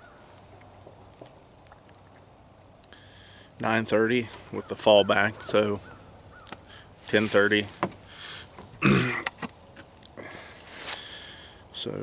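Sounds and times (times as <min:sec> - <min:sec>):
faint scattered clicks: 0:00.6 - 0:03.1.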